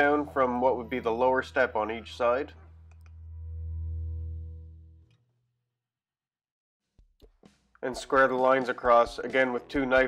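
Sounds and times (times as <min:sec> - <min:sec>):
sustained tone: 0:00.0 - 0:05.1.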